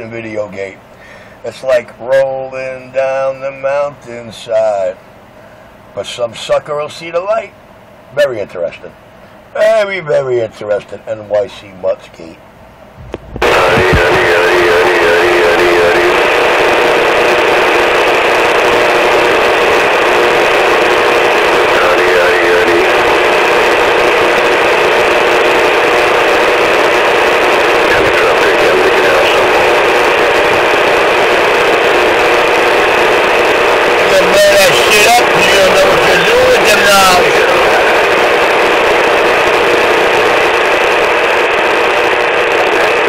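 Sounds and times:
steady radio hiss: 0.0s - 43.0s
music over radio speaker: 13.4s - 43.0s.

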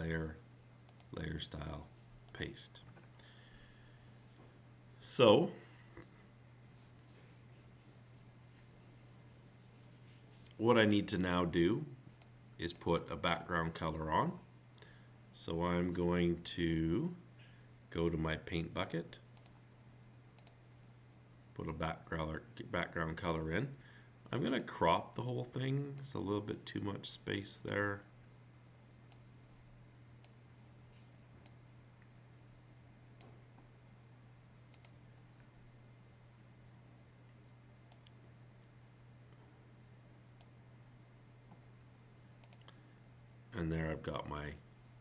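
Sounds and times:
low steady hum: 0.0s - 45.0s
faint computer mouse clicks: 19.4s - 19.6s, 20.4s - 20.6s, 34.7s - 35.0s, 42.4s - 42.8s.

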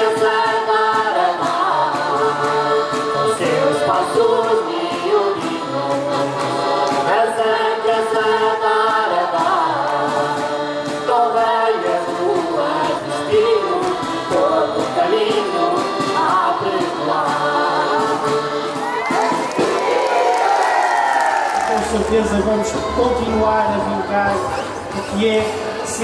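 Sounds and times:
group singing folk song in chorus: 0.0s - 20.1s
steady beat: 12.1s - 26.0s.

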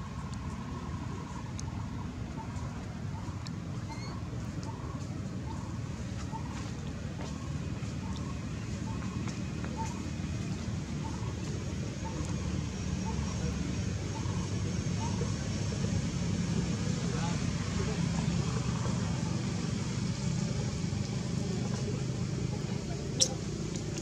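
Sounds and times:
faint indistinct voices: 0.0s - 24.0s.

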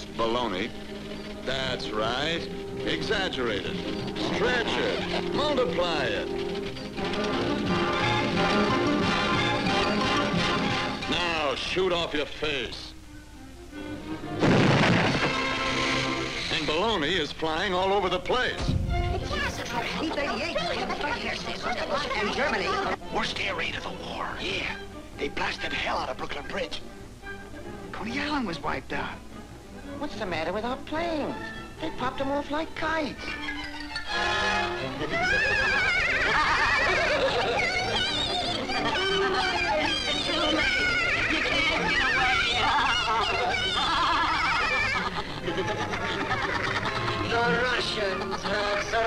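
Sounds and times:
cartoon cannon boom: 14.4s - 15.4s
cartoon music score: 33.2s - 49.0s.

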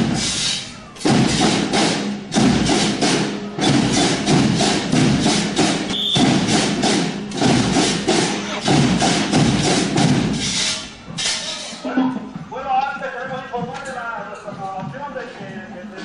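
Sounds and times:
marching band drums: 0.0s - 16.0s.

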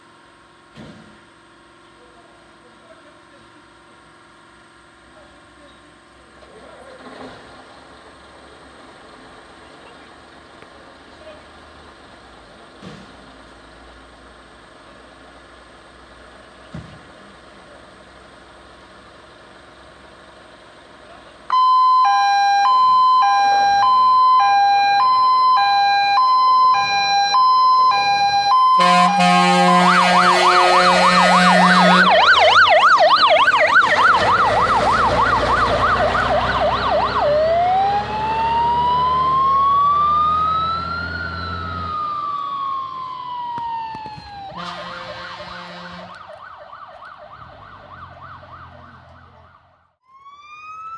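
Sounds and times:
truck engine: 0.0s - 49.9s
fire engine siren: 21.5s - 50.9s.

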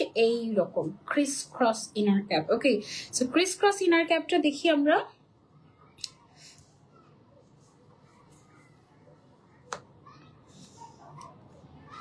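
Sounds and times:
quiet room noise: 0.0s - 12.0s.

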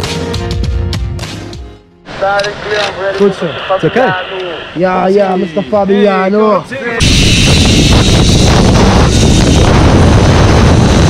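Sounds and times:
wind buffeting microphone: 7.0s - 11.0s.

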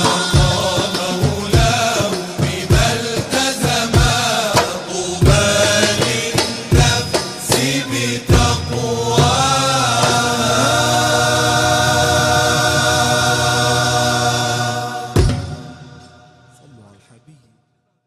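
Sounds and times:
hand percussion beat: 0.0s - 13.2s
male chorus singing: 0.0s - 16.5s.

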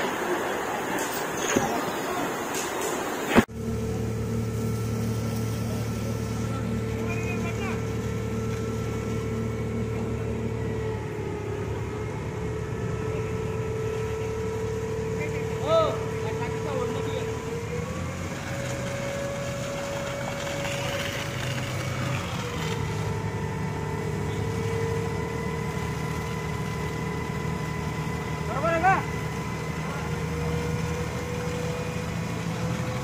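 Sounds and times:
hose jet spraying water: 0.0s - 10.4s, 14.0s - 33.0s
fire truck engine running: 2.2s - 33.0s.

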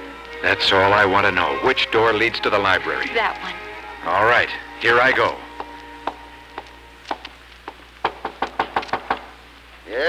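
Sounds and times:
footsteps: 4.8s - 9.3s
knocking on wooden door: 8.0s - 9.3s.

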